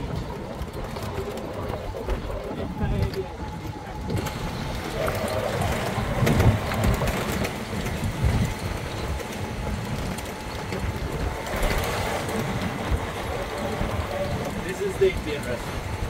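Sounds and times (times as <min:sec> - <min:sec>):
golf cart rolling: 0:00.0 - 0:16.0
wind buffeting microphone: 0:00.0 - 0:16.0.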